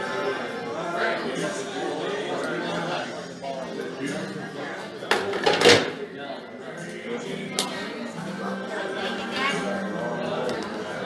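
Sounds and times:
background music: 0.0 - 11.0
bar chatter: 0.0 - 11.0.

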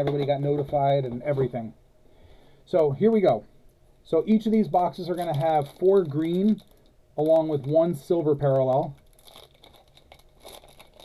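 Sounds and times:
foil wrapper tearing and crinkling: 5.0 - 7.8, 8.4 - 11.0.

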